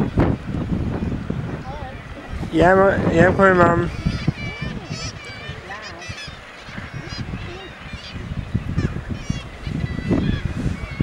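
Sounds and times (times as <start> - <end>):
seabirds calling harshly: 0.0 - 11.0.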